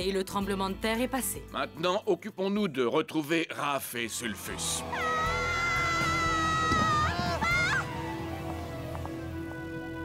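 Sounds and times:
background music: 0:00.0 - 0:10.0
cartoon character screaming: 0:04.9 - 0:07.9.

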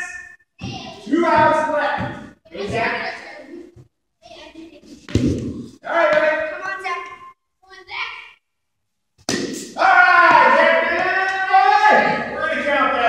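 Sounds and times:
sharp knock: 0:09.2 - 0:09.8.

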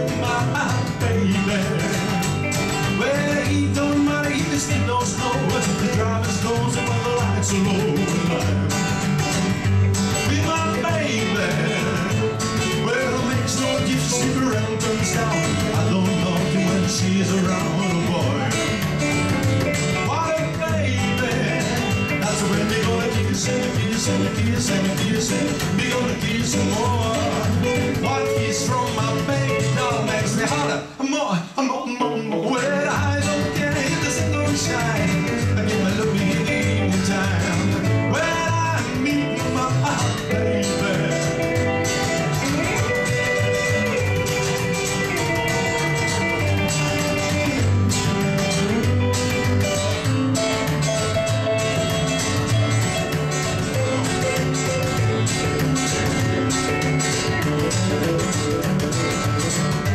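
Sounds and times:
electric guitar lead: 0:00.0 - 0:31.0, 0:31.9 - 0:59.9
upright bass: 0:00.0 - 0:31.0, 0:32.0 - 0:59.9
strummed acoustic guitar: 0:00.0 - 0:59.9.

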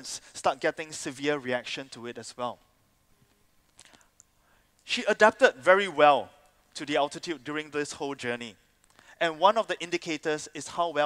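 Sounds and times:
man speaking: 0:00.0 - 0:02.6, 0:04.9 - 0:08.6, 0:09.2 - 0:11.0.

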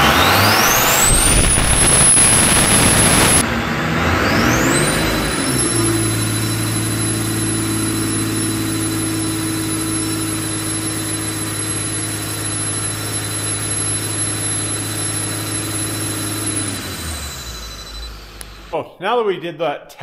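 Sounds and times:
diesel engine drone under load: 0:00.0 - 0:18.8
turbocharger whistle: 0:00.0 - 0:18.8.

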